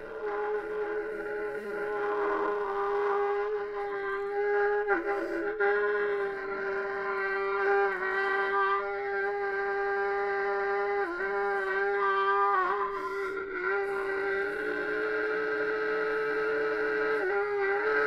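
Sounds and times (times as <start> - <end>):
trumpet holding a long note: 0.0 - 18.0.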